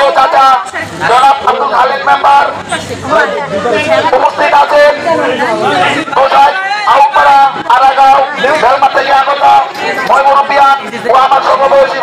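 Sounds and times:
man speaking through megaphone: 0.0s - 12.0s.

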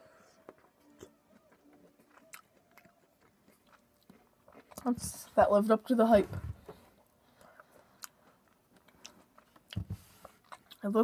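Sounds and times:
faint chewing mouth sounds: 0.0s - 5.4s, 6.6s - 11.0s.

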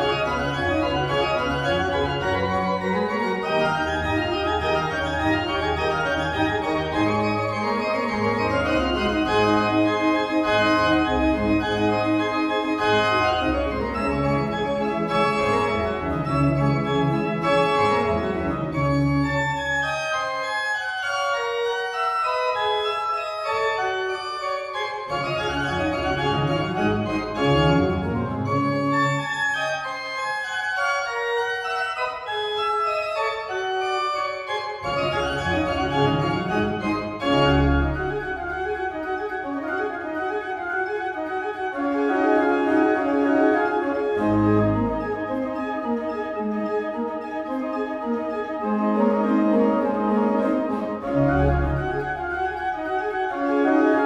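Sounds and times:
pipe organ playing fast passages: 0.0s - 54.0s.

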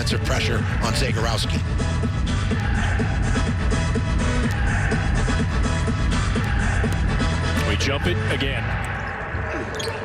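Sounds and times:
music with heavy bass beat: 1.6s - 7.6s.

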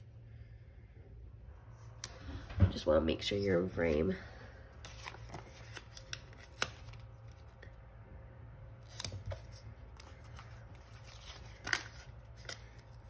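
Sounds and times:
paper sliding and rustling: 4.8s - 7.0s.

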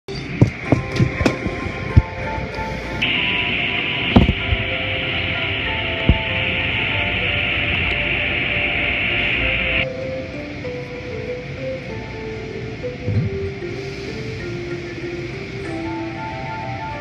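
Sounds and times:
music with held notes: 0.4s - 17.0s.

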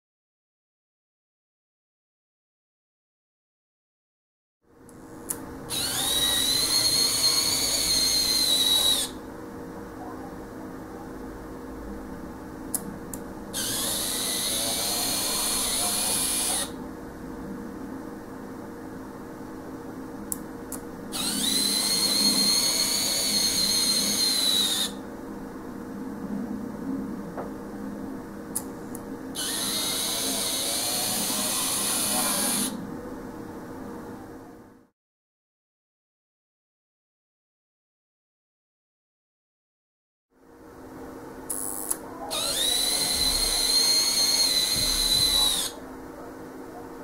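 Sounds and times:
steady low hum: 4.7s - 34.9s, 40.4s - 47.0s
model train motor whirring: 5.7s - 9.2s, 13.6s - 16.8s, 21.1s - 25.0s, 29.4s - 32.8s, 41.5s - 45.8s.

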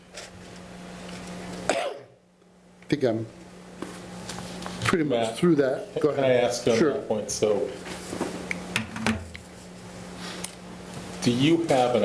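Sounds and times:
steady low hum: 0.0s - 12.0s
person coughing: 1.7s - 2.2s.

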